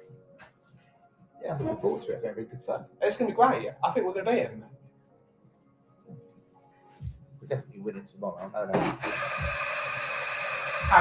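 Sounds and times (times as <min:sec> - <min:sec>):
coffee machine hissing: 0:08.8 - 0:11.0.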